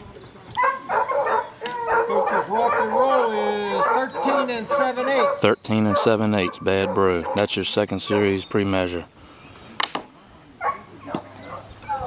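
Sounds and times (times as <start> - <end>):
dog baying: 0.6 - 7.5
dog barking: 0.6 - 8.3, 10.6 - 12.0.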